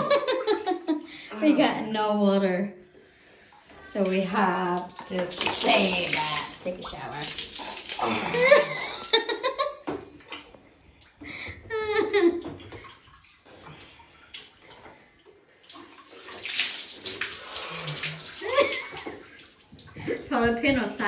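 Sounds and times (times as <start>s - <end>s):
water poured and splashing: 3.0s - 11.2s, 12.4s - 21.0s
person's voice: 4.0s - 7.4s.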